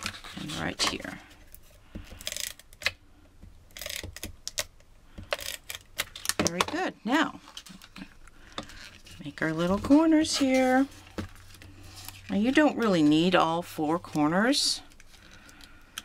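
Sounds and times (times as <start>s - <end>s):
adhesive applicator clicks and rasps: 3.7s - 6.4s
wordless voice sound: 9.2s - 10.9s.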